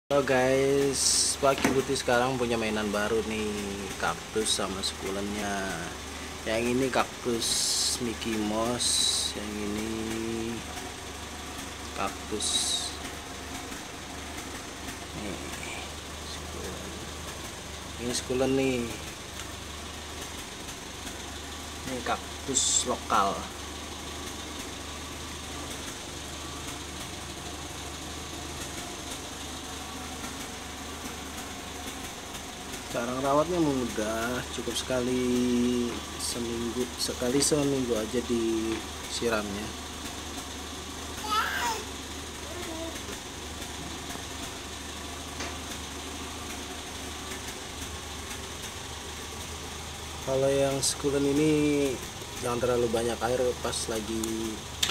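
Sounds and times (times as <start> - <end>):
person speaking: 0.1 - 10.7, 12.0 - 13.1, 15.1 - 17.1
steady low hum: 0.1 - 54.9.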